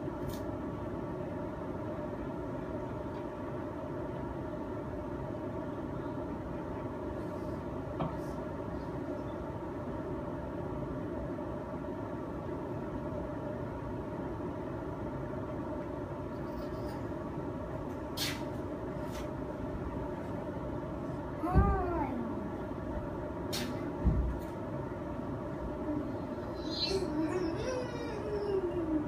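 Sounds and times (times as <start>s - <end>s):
machine rumble and hum: 0.0s - 29.0s.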